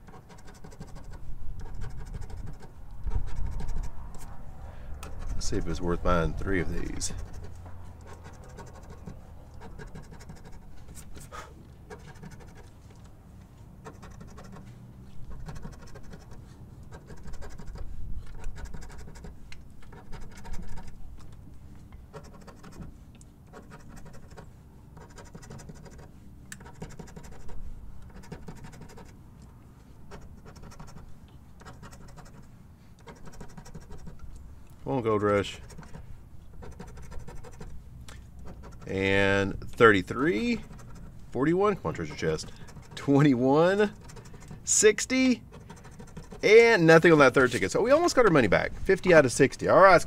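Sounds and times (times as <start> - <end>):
coin scratching lottery ticket: 0.0 - 4.4, 5.0 - 11.2, 11.8 - 12.8, 13.8 - 21.2, 22.1 - 29.2, 30.0 - 34.3, 35.0 - 50.0.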